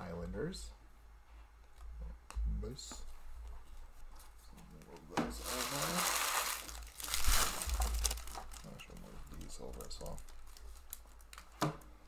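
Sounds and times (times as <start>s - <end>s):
cards and wrappers rustling: 5.3s - 11.7s.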